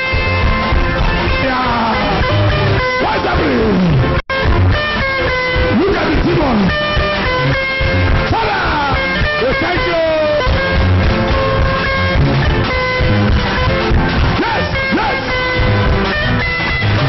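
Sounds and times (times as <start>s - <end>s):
loud band music: 0.0s - 17.0s
voices crying out: 8.3s - 10.5s.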